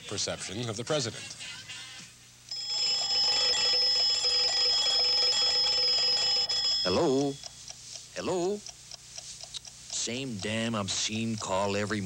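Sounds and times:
alarm clock bells ringing: 2.5 - 7.6.

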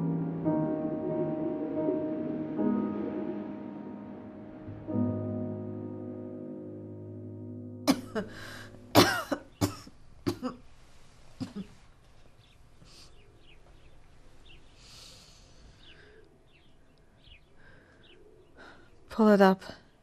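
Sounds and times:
woman coughing: 7.9 - 10.6
faint bird chirps: 11.4 - 20.0.

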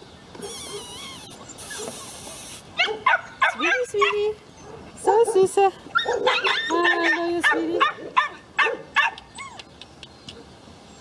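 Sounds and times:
puppies yipping: 0.4 - 4.8, 5.9 - 9.7.

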